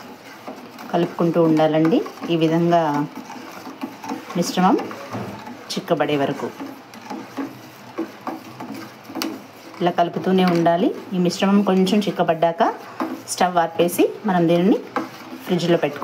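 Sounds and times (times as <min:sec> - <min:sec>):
metal spoon scraping a saucepan: 0:00.0 - 0:16.0.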